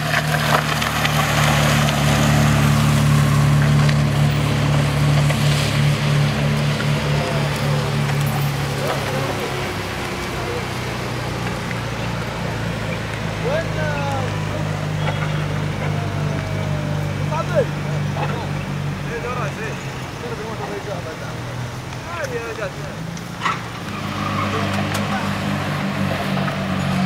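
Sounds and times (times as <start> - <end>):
car engine running: 0.0 - 27.0
short calls from voices: 13.4 - 20.2.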